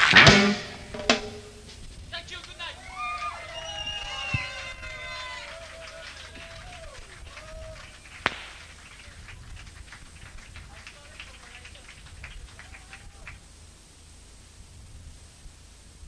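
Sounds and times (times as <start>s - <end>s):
sharp knock: 0.0s - 1.8s
audience shouting and whooping: 2.4s - 9.2s, 12.4s - 13.3s.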